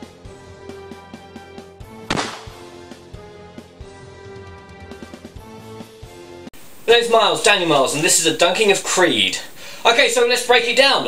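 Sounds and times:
background music: 0.0s - 6.5s
gunshot: 2.0s - 2.8s.

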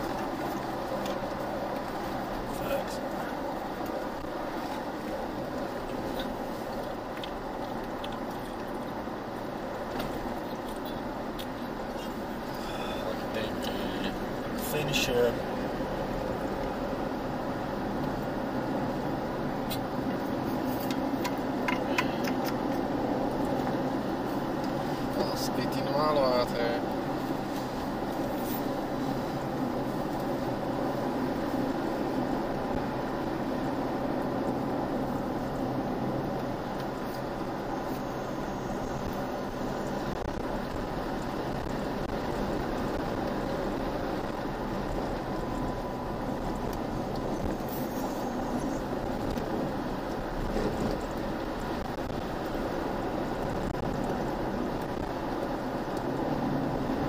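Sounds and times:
vehicle driving on gravel road: 0.0s - 57.0s.

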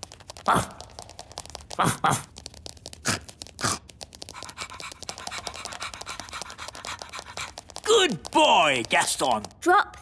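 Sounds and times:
cartoon scratchy scuffling patter: 0.0s - 10.0s.

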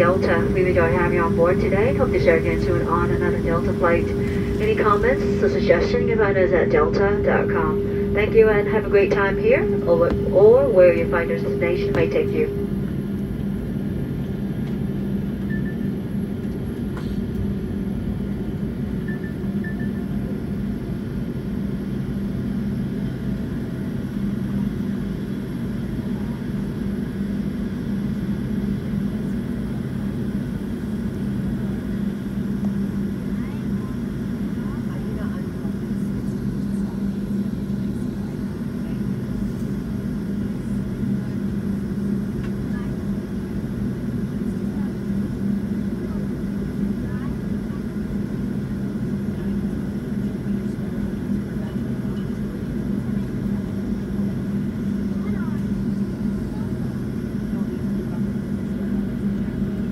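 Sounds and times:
airplane cabin hum: 0.0s - 59.9s.

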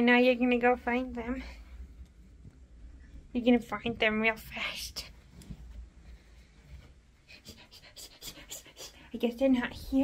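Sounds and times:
soft brushing noises: 4.0s - 10.0s.

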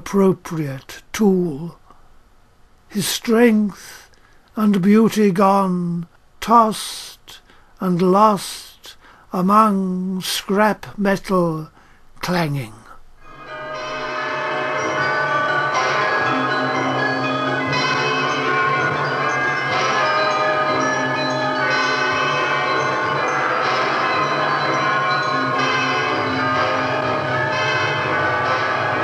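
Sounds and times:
ringing bell-like tones: 13.2s - 29.0s.

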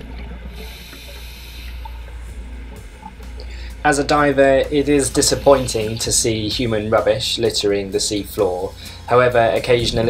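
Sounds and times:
low underwater rumble: 0.0s - 7.0s, 9.6s - 10.0s
regulator breathing hiss: 0.5s - 4.3s, 4.9s - 6.6s, 8.6s - 9.2s.

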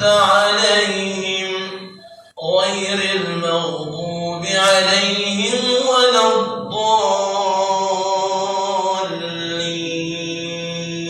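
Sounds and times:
man chanting melodically: 0.0s - 11.0s.

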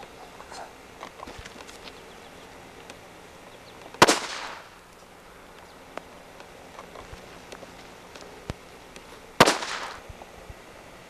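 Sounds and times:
firecracker bang: 4.0s - 4.8s, 9.4s - 10.0s.

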